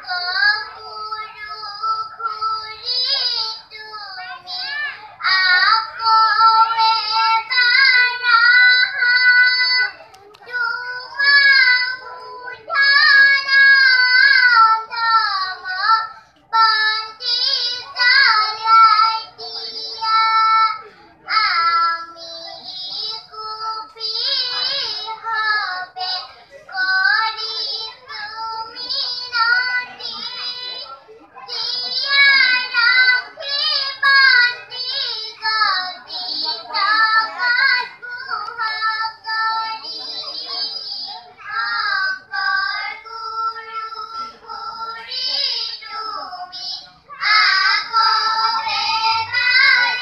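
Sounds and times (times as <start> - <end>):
children singing: 0.0 - 50.0.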